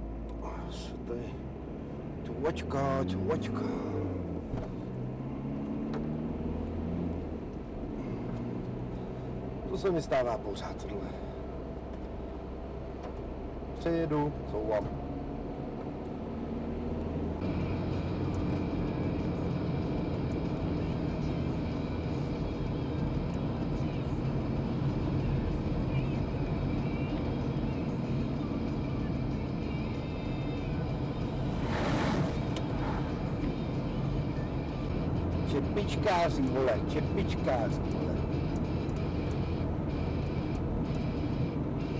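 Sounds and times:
car engine and tyre noise: 0:00.0 - 0:41.9.

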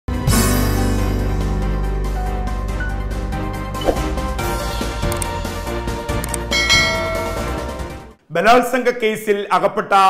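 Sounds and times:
intro music: 0:00.4 - 0:08.2
bell chime: 0:06.5 - 0:07.9.

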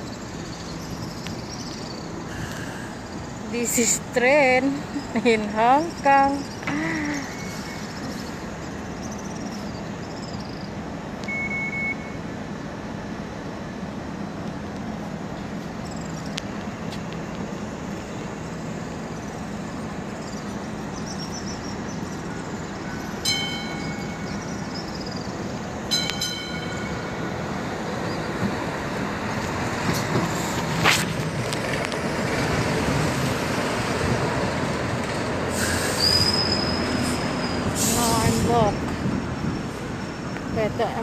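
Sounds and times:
street and rail traffic rumble: 0:00.0 - 0:41.0
short beep: 0:11.3 - 0:12.2.

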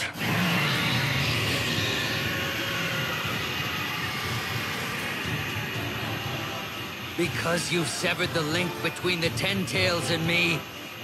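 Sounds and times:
continuous noisy rumbling rush: 0:00.0 - 0:11.0.

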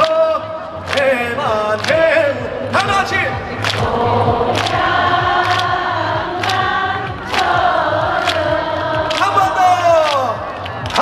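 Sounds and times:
man and crowd singing: 0:00.0 - 0:11.0.

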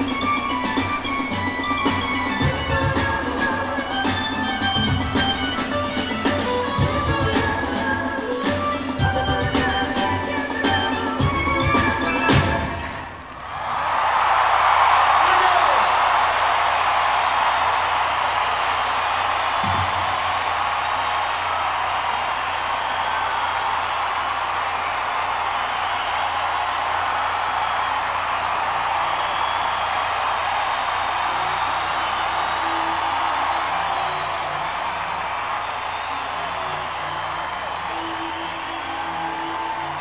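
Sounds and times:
audience applauding and cheering: 0:00.0 - 0:40.0
whistles: 0:14.4 - 0:14.9, 0:17.8 - 0:18.9, 0:21.4 - 0:26.5, 0:27.5 - 0:30.3, 0:31.3 - 0:34.2, 0:35.6 - 0:40.0.

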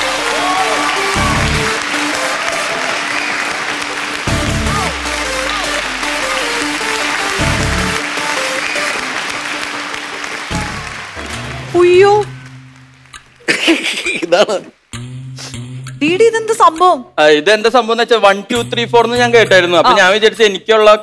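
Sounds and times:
loud stage music: 0:00.0 - 0:13.4
audience applauding: 0:00.0 - 0:14.2.

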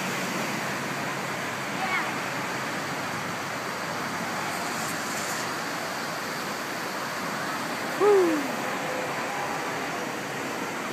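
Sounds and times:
flowing water rushing: 0:00.0 - 0:10.9
person shouting whoo: 0:08.0 - 0:08.6.

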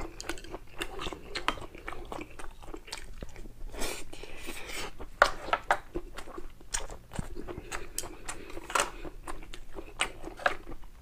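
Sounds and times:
man chewing with mouth clicks: 0:00.0 - 0:11.0.

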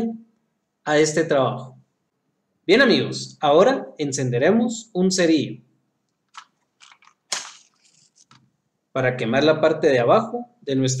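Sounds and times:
match flame crackle: 0:06.3 - 0:08.4.

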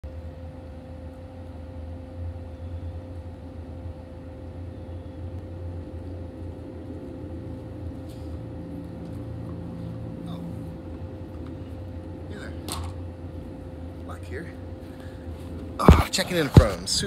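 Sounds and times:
mechanical hum with steady tone: 0:00.0 - 0:17.0.

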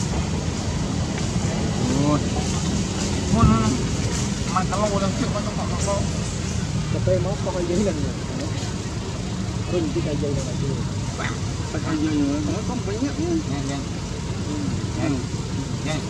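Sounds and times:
indistinct voices talking: 0:00.0 - 0:16.0.

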